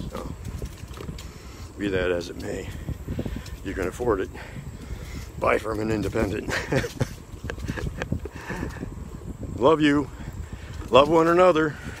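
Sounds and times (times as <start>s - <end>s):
wind and riding noise: 0.0s - 12.0s
man talking: 1.8s - 2.9s, 3.6s - 4.6s, 5.3s - 6.8s, 9.5s - 10.2s, 10.8s - 11.9s.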